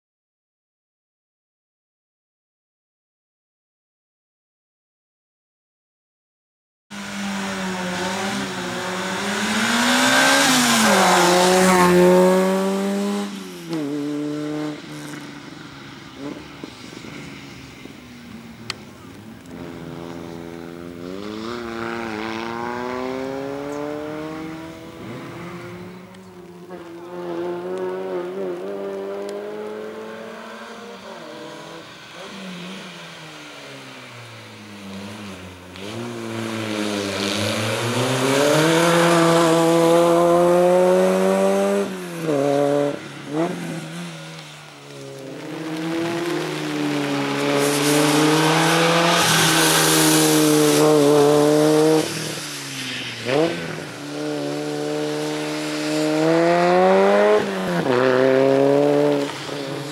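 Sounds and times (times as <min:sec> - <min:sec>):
race car engine revving: 0:07.0 - 0:15.2, 0:19.0 - 0:52.5, 0:53.2 - 0:59.9.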